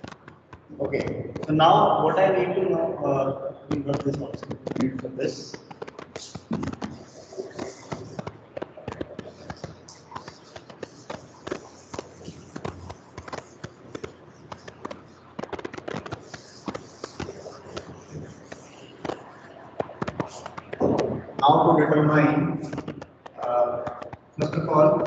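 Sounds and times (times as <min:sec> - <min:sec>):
duster rubbing on chalkboard: 0:03.9 - 0:21.4.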